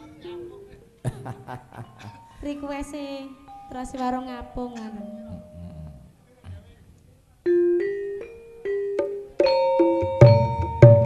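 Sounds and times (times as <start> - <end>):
struck ringing pitched notes: 1.8 - 6.0.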